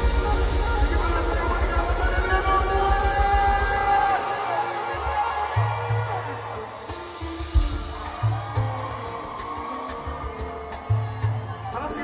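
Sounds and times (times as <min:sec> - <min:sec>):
live band music over loudspeakers: 0:00.0 - 0:12.0.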